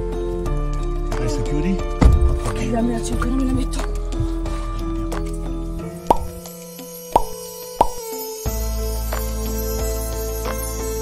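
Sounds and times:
soft background music: 0.0 - 11.0
cartoon pop sound effects: 6.1 - 6.4, 7.2 - 8.0.

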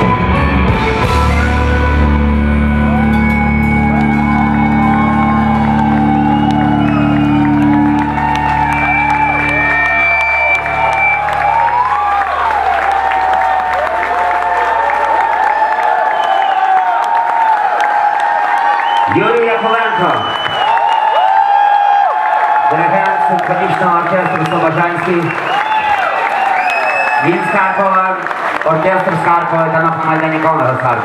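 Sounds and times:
live band chord ringing: 0.0 - 11.8
crowd cheering and whooping: 0.0 - 31.0.

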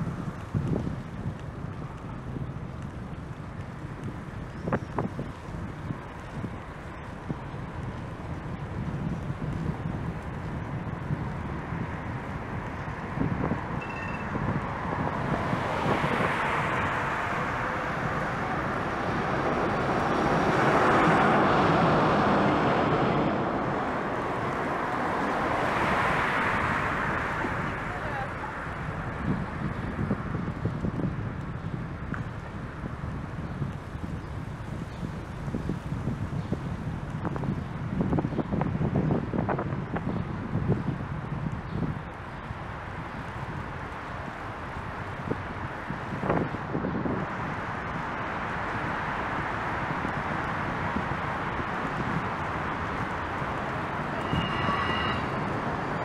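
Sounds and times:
road rumble: 0.0 - 56.0
wind on microphone: 0.0 - 56.0
cars passing close by: 11.0 - 30.7, 42.1 - 56.0.

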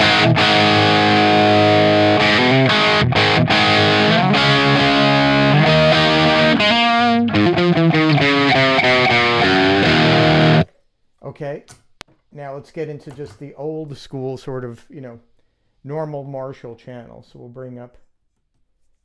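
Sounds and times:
distorted electric guitar chords: 0.0 - 10.7.

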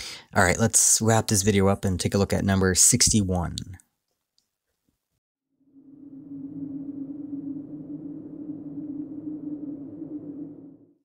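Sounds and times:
low droning tone with rumble: 5.7 - 11.0.

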